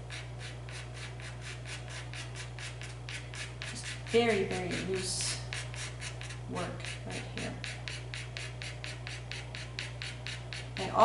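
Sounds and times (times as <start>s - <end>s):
pastel stick scraping paper: 0.0s - 11.0s.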